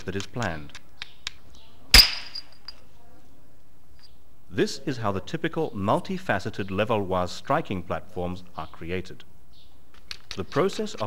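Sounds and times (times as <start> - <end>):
high ringing: 1.9 - 2.8.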